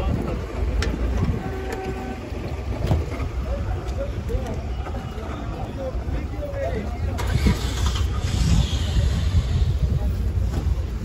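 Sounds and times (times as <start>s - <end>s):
muffled voices: 0.0s - 11.0s
wind on microphone: 7.2s - 11.0s.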